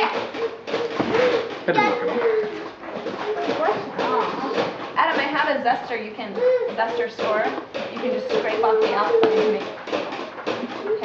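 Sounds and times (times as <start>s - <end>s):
children's voices: 1.1s - 5.6s, 6.3s - 9.6s
chatter of voices: 1.2s - 9.6s.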